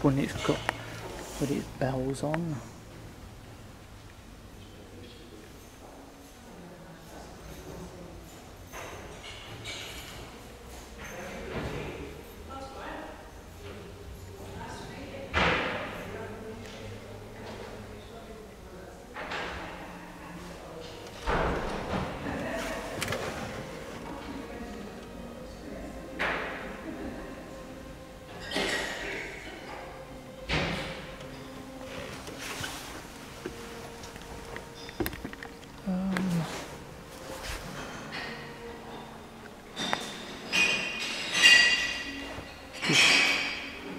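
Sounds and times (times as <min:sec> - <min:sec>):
murmur of voices: 0:00.0 - 0:40.5.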